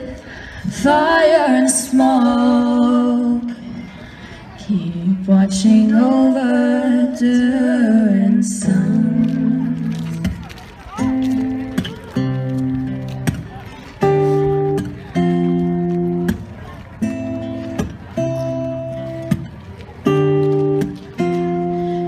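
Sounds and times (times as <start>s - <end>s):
acoustic guitar strummed chords: 11.0s - 22.0s.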